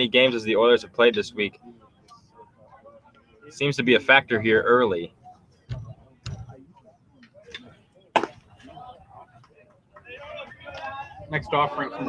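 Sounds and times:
baseball popping into leather mitt: 8.2s - 8.4s.

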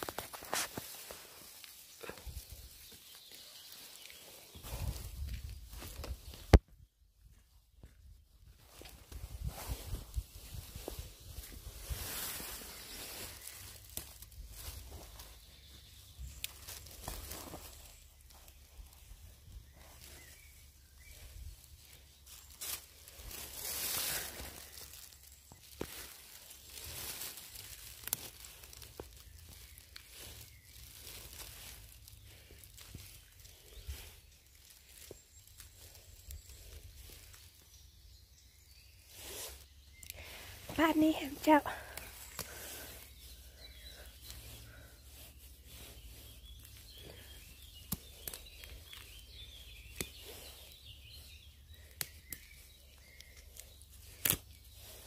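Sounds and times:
dry leaves rustling: 0.0s - 6.6s, 8.4s - 55.0s
twigs snapping: 12.5s - 18.9s, 21.9s - 37.5s, 41.8s - 43.2s, 45.8s - 50.5s, 51.7s - 55.0s.

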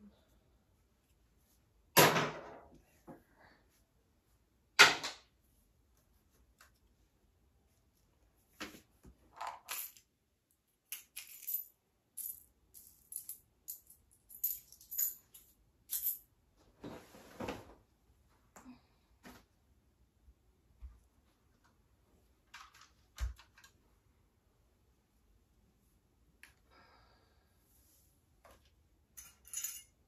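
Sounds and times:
small toys clinking: 10.9s - 16.2s.

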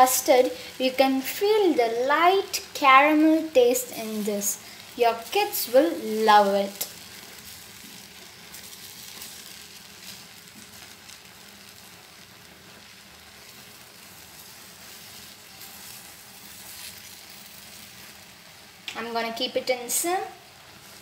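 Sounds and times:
custard bubbling in a pan: 0.0s - 21.0s
gas flame: 0.0s - 21.0s.

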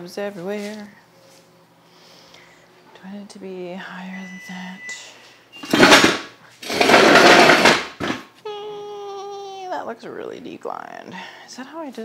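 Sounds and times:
weight bench scraping: 5.6s - 8.2s
woman humming hmm: 8.4s - 9.8s.

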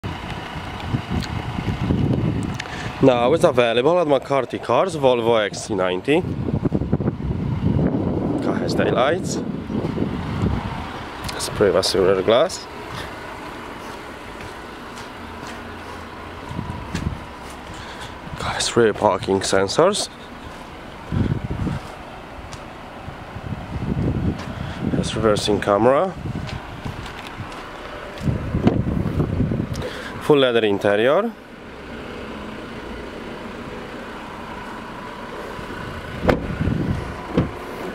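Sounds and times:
wind buffeting microphone: 0.0s - 12.3s, 16.2s - 19.5s, 20.2s - 29.9s, 35.6s - 37.9s
soft low bumps: 12.8s - 29.8s, 34.5s - 37.9s.

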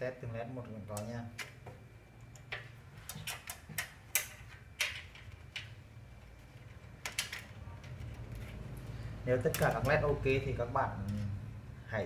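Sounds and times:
low steady hum: 0.0s - 12.0s
sharp clicks and light knocks: 0.9s - 5.8s.

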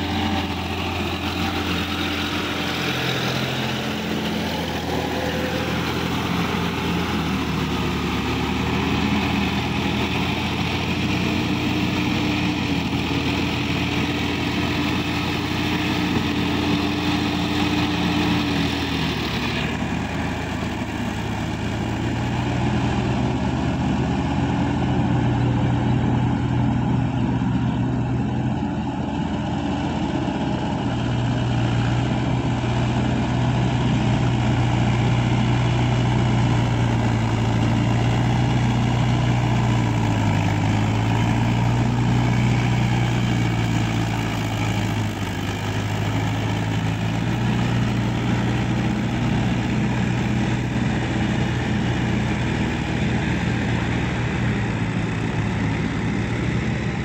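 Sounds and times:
deeper engine note: 0.0s - 57.0s
tractor diesel engine under load: 0.0s - 57.0s.

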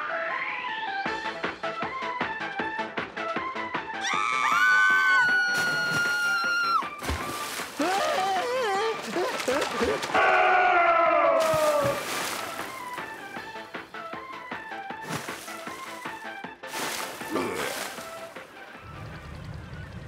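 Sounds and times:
rhythmic background music: 0.8s - 5.6s, 12.0s - 20.0s
warbling cries and wail: 7.8s - 12.0s.

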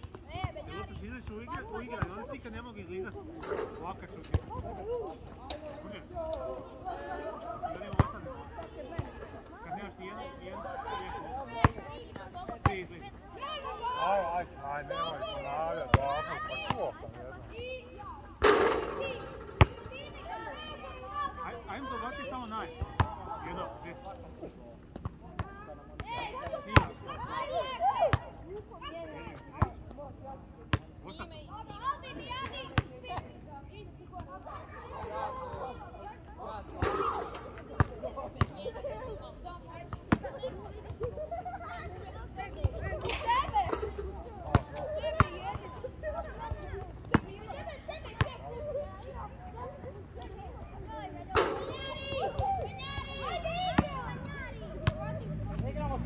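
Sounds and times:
players talking: 0.1s - 56.0s
basketballs bouncing: 18.4s - 20.0s.

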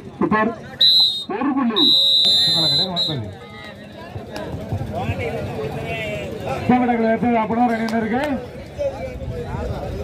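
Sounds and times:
referee's whistle blasts: 0.8s - 3.3s.

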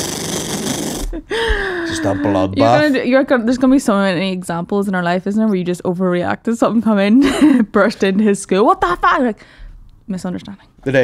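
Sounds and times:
person laughing breathlessly: 1.0s - 2.5s.

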